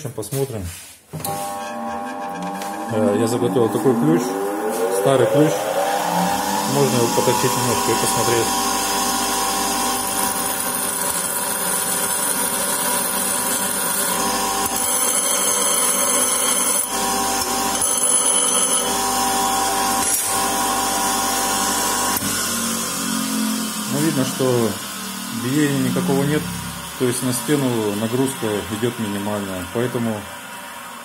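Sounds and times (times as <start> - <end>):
bench grinder motor hum: 1.2 - 31.0.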